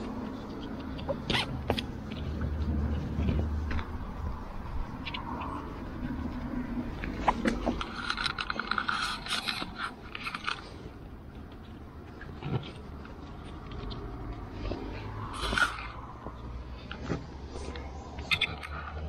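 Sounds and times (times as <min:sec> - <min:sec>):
webbing scraping through buckles: 0:00.0 - 0:19.0.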